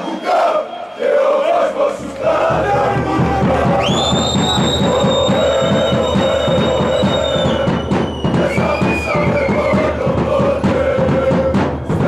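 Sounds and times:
long shrill whistle: 0:00.0 - 0:01.6, 0:03.7 - 0:10.0
football supporters chanting: 0:00.0 - 0:12.0
drum beating fast rhythm: 0:01.7 - 0:12.0.

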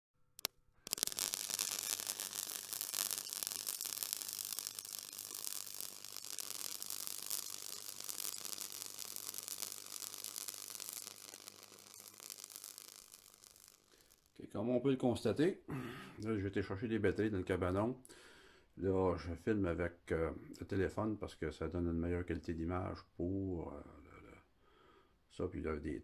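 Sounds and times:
sharp clicks: 0:00.4 - 0:14.3
thin high tone: 0:00.9 - 0:14.2
static-like hiss: 0:00.9 - 0:14.4.

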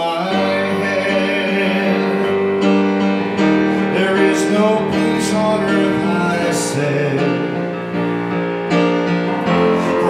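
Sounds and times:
man singing a hymn: 0:00.0 - 0:02.6, 0:03.6 - 0:08.1, 0:09.5 - 0:10.0
digital piano: 0:00.0 - 0:10.0.

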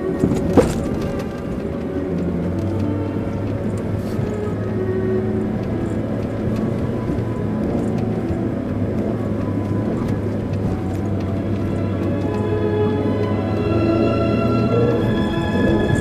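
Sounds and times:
background music: 0:00.0 - 0:16.0
car engine drone: 0:00.0 - 0:16.0.

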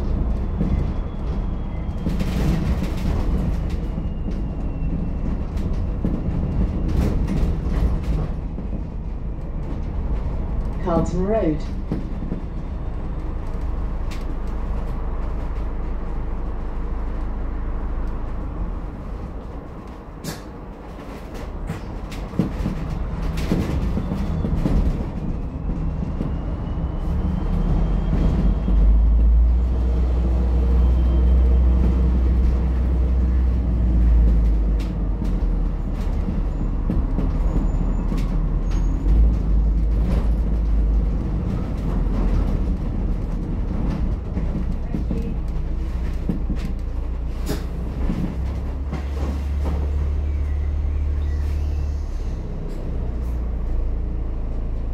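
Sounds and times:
bus drivetrain rumble: 0:00.0 - 0:54.9.

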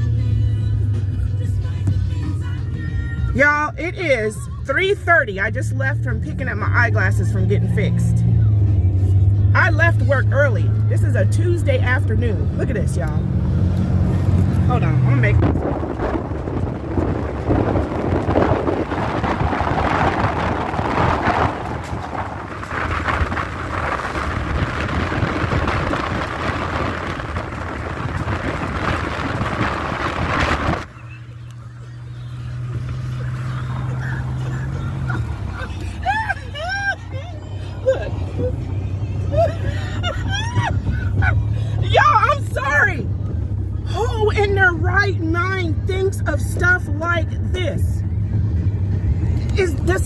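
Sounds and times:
car in traffic: 0:00.0 - 0:50.0.

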